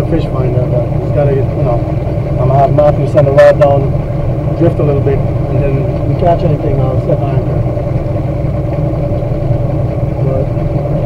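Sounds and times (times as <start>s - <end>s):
outboard motor running: 0.0s - 11.0s.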